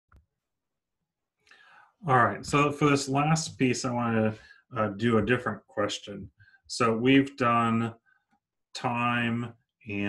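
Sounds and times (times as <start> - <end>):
soft in-breath: 1.4 - 2.0
person speaking: 2.0 - 7.9.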